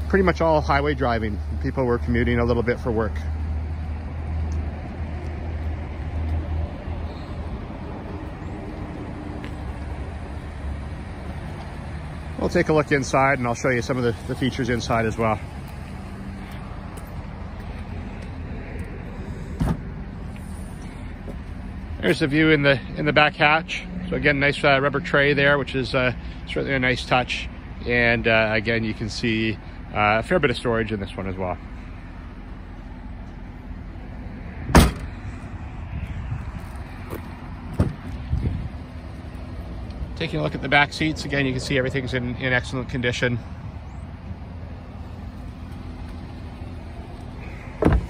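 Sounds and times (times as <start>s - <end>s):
low vehicle hum: 0.0s - 48.0s
car hatch slamming: 34.7s - 35.1s, 47.8s - 48.0s
car door knocks and clicks: 47.8s - 48.0s.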